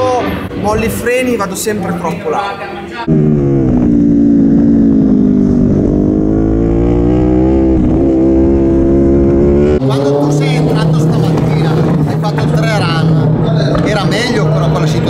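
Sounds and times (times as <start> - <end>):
steady low hum: 3.1 - 9.8
motorcycle engine running hard: 3.1 - 15.0
voices: 9.8 - 15.0.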